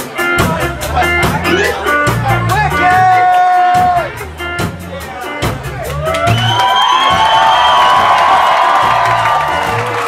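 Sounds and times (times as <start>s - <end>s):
live ska band playing: 0.0s - 10.0s
crowd cheering: 5.7s - 10.0s.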